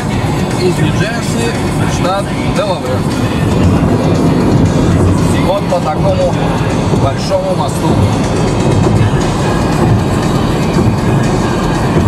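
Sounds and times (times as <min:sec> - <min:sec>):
background music: 0:00.0 - 0:12.0
car road noise: 0:00.0 - 0:12.0.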